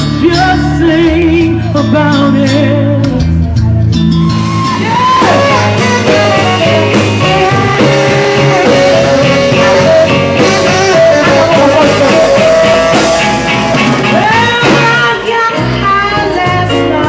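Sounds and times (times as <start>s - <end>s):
live band playing blues: 0.0s - 17.0s
melodic lead line: 0.0s - 17.0s.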